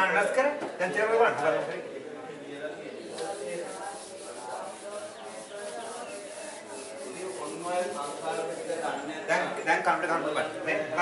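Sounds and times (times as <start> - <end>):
eraser wiping whiteboard: 3.1 - 9.0.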